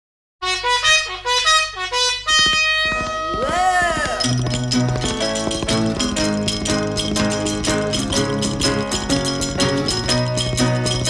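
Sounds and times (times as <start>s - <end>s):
horn playing pop melody: 0.4s - 8.0s.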